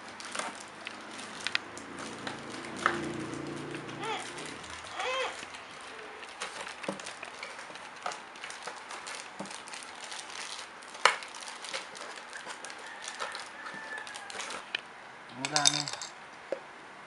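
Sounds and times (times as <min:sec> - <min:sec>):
plastic packaging crinkling: 0:00.0 - 0:14.8.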